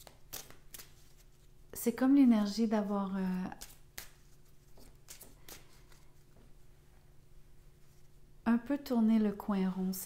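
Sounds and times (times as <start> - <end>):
cards clicking and rustling: 0.0 - 1.4.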